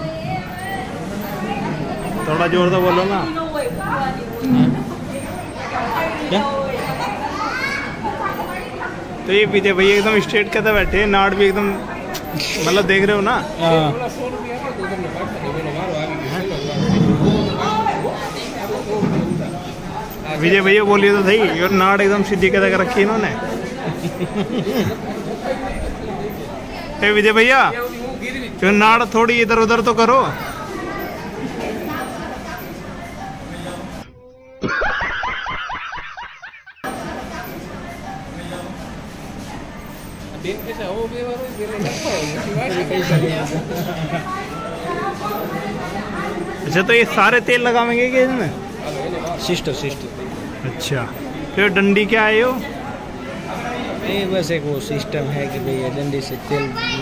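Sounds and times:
chatter of voices in a hall: 0:00.0 - 0:34.7, 0:35.8 - 0:57.0
man laughing hard: 0:34.5 - 0:36.8.

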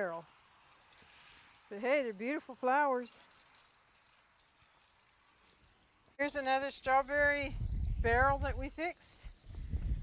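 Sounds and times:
faint steady hiss: 0:00.0 - 0:09.5.

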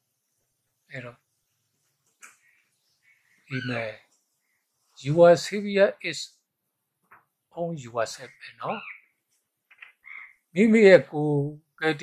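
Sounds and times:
man talking: 0:00.9 - 0:01.2, 0:03.5 - 0:04.1, 0:05.0 - 0:06.4, 0:07.5 - 0:08.9, 0:10.5 - 0:12.0.

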